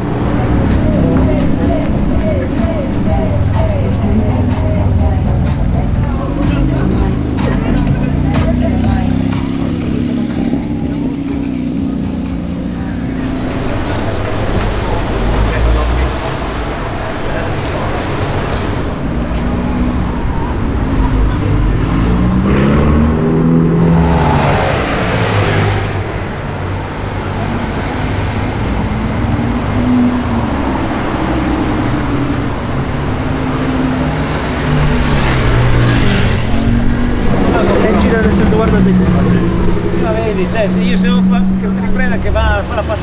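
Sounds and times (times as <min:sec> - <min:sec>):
sports car engines accelerating past: 0:00.0 - 0:43.0.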